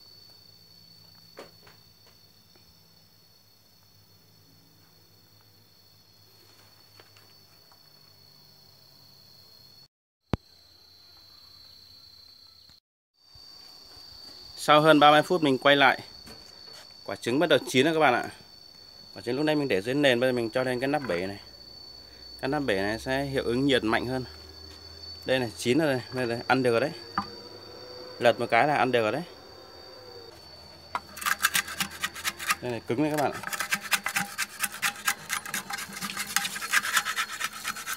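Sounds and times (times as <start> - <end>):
high-pitched insect drone: 18.1 - 37.9
wooden stick scraping metal pan: 30.7 - 37.9.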